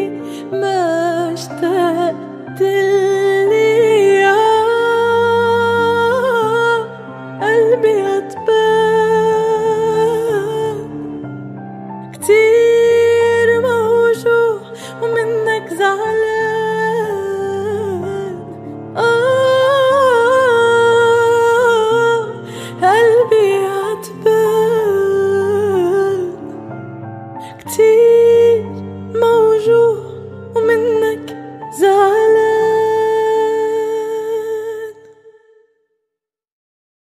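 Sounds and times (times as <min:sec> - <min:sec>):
soft sustained backing music: 0:00.0 - 0:35.4
woman singing wordless notes: 0:12.2 - 0:26.6, 0:27.4 - 0:35.5.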